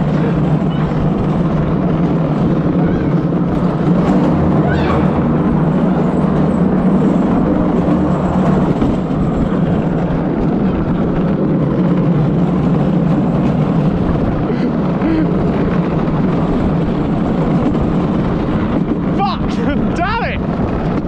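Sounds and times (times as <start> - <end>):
cart wheels rumbling on concrete: 0.0 - 21.0.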